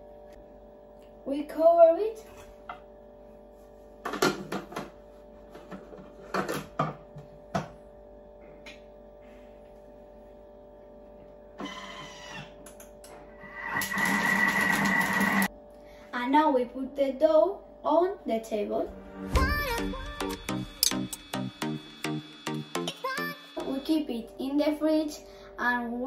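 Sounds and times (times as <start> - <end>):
kitchen machine motor running: 11.6 - 15.5.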